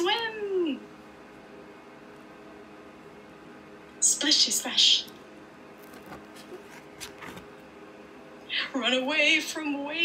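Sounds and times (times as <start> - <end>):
cardboard page turning: 5.8 - 7.6.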